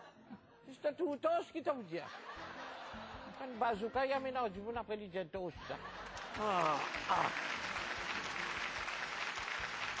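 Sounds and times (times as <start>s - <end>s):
audience applause: 6.0s - 10.0s.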